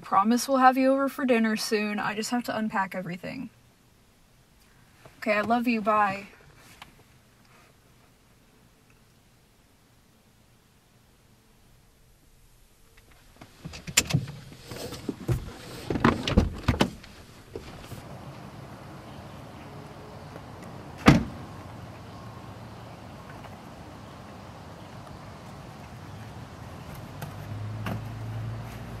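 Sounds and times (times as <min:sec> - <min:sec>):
low steady hum: 0:00.0 - 0:29.0
rustling and small knocks: 0:12.9 - 0:18.1
dull thump: 0:13.4 - 0:18.0, 0:21.0 - 0:21.4, 0:26.9 - 0:28.2.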